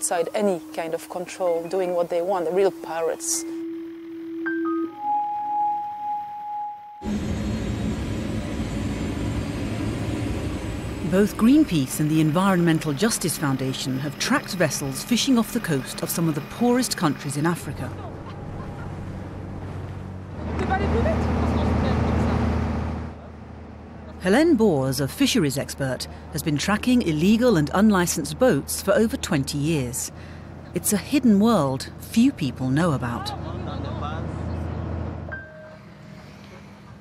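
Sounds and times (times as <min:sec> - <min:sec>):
outboard motor droning: 0:00.0 - 0:04.4, 0:07.0 - 0:37.0.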